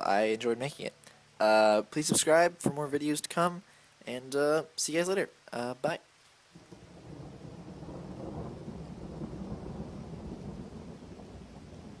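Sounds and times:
low rumbling: 6.6 - 12.0.

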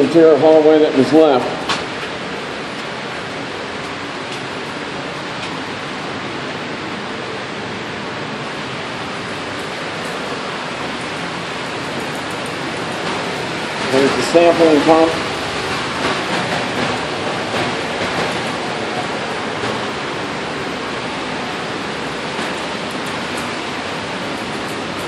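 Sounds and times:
air machinery rushing: 8.1 - 25.0.

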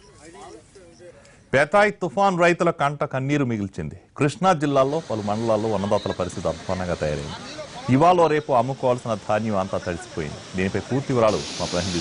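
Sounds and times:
man talking: 0.0 - 12.0
steady high hiss: 4.4 - 12.0.

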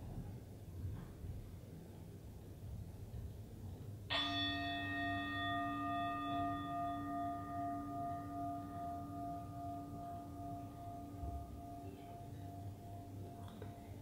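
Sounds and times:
singing bowl ringing: 4.1 - 14.0.

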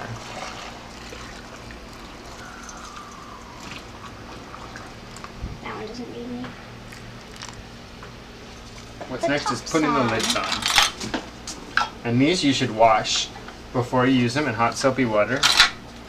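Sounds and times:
liquid trickling into jar: 0.0 - 5.4, 6.9 - 7.6.

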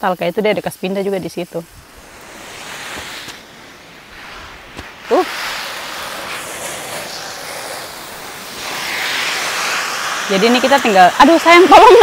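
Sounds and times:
garden hose spraying water: 0.0 - 12.0.

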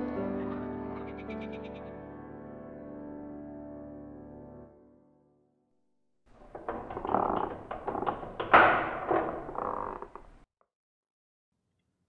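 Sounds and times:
door latch clicks and rattles: 6.4 - 10.4
heavy wooden door thunk: 6.4 - 10.4.

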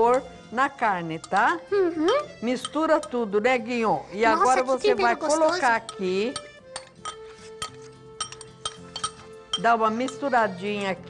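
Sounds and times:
soft background music: 0.0 - 11.0
spoon clinking ceramic dish: 1.2 - 3.2, 5.4 - 10.4.

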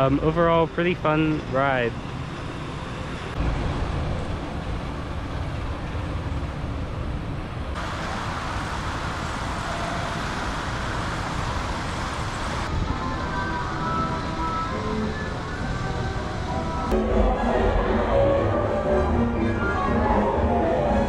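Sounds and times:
outdoor background rumble and hiss: 0.0 - 17.3.

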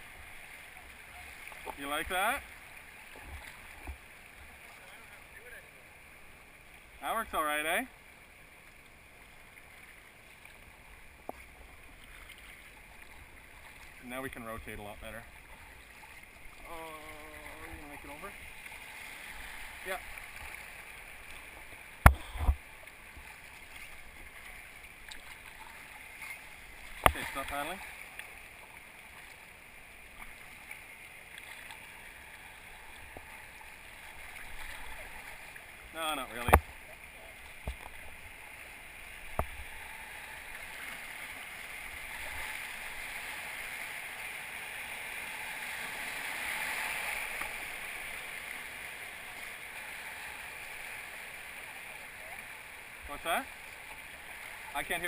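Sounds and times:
whitewater rushing: 12.1 - 30.6
thump: 22.0 - 22.6.

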